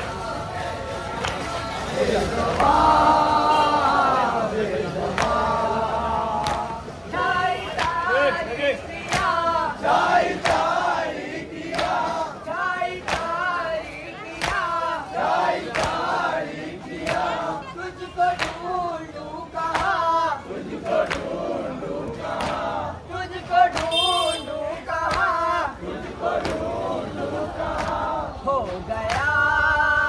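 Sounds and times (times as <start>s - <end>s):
men chanting a lament: 0.0s - 30.0s
hands slapping chests: 6.4s - 6.8s, 9.0s - 9.4s, 13.0s - 13.5s, 14.4s - 14.8s.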